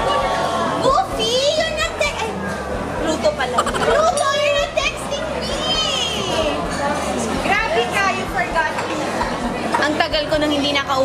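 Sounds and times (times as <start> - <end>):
dining room chatter: 0.0 - 11.0.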